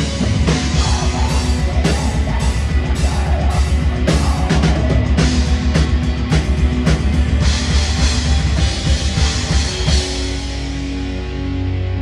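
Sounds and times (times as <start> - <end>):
bass: 0.0 - 12.0
distorted electric guitars: 0.0 - 12.0
drums: 0.0 - 12.0.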